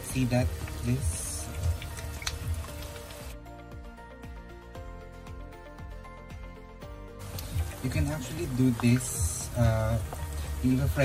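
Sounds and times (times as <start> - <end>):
meat deep-frying in bubbling oil: 0.0 - 3.4, 7.2 - 11.0
background music with steady beat: 0.0 - 11.0.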